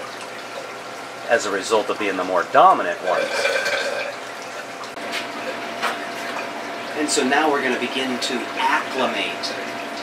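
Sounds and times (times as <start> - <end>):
aquarium filter water hiss: 0.0 - 10.0.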